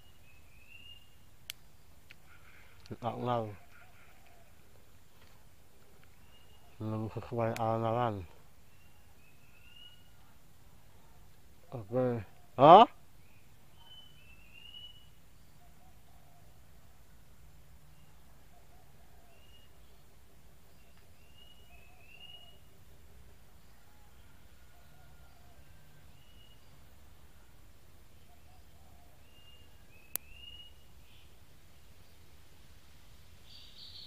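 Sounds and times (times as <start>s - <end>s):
faint bird chirps: 0.0s - 4.7s, 6.0s - 22.9s, 23.5s - 32.3s, 33.4s - 34.0s.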